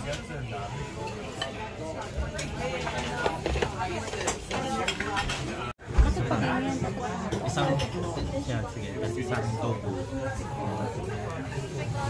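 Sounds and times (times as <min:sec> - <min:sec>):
dishes and utensils clinking: 0:00.0 - 0:05.7, 0:07.2 - 0:08.6
restaurant chatter: 0:00.0 - 0:12.0.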